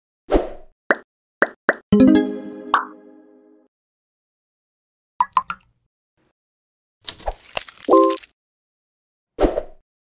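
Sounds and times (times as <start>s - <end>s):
ringing musical chord: 2.0s - 3.6s.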